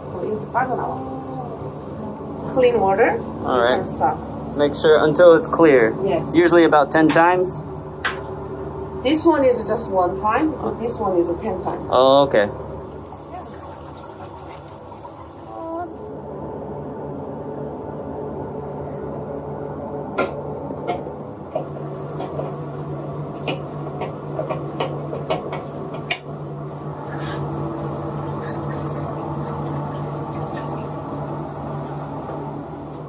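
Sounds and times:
steady low hum and hiss: 0.0s - 33.0s.

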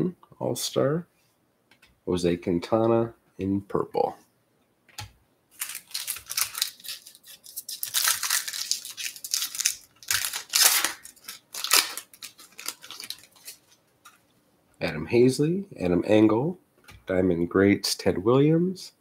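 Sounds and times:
foil wrapper tearing: 5.6s - 13.8s.

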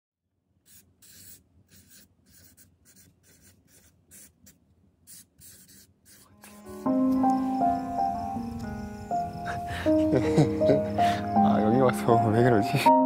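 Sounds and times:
pen scratching on paper: 0.7s - 7.0s.

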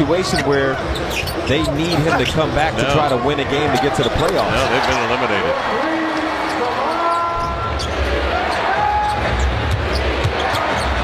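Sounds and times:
crowd hum: 1.9s - 11.0s.

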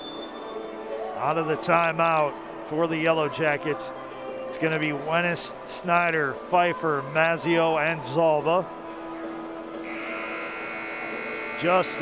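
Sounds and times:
scoreboard horn buzzing: 9.8s - 12.0s.

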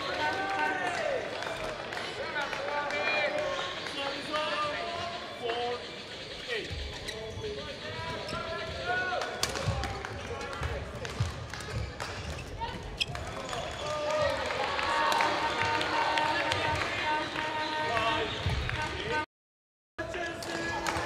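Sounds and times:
shoes squeaking on court floor: 5.8s - 9.8s, 10.5s - 13.8s.

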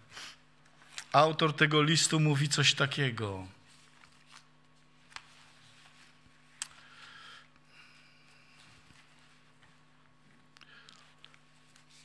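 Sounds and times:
faint electrical hum: 0.0s - 12.0s
pages turning: 0.6s - 1.2s, 3.6s - 7.0s, 8.4s - 12.0s.

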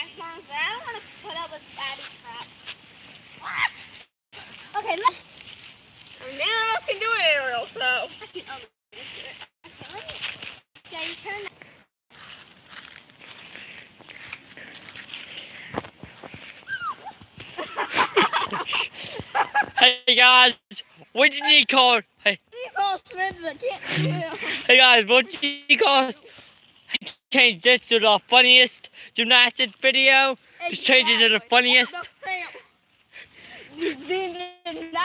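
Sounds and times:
girls laughing and squealing: 16.6s - 19.8s
girl's high wordless vocal sound: 22.6s - 24.4s.

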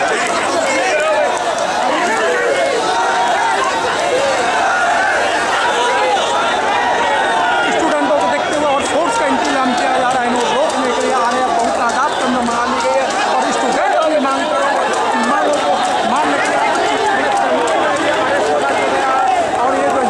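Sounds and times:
crowd talking and shouting: 0.0s - 20.0s.

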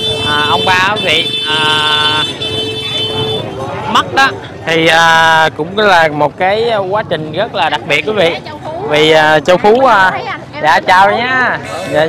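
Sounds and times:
man's drawn-out hesitation sound: 0.0s - 12.0s.

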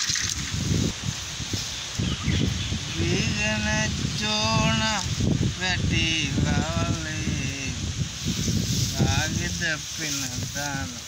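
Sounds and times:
man speaking: 9.0s - 11.0s.

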